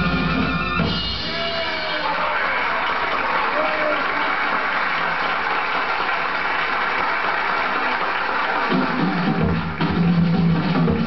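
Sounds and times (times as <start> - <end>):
jazz band playing: 0.0 - 1.6
drums: 0.0 - 3.3, 7.0 - 11.0
crowd cheering: 0.0 - 11.0
audience clapping: 1.9 - 11.0.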